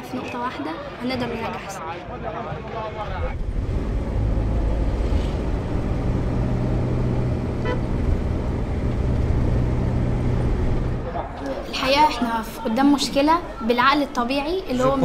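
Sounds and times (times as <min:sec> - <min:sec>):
engine drone with road noise: 0:03.0 - 0:11.7
car horn toot: 0:07.6 - 0:08.0.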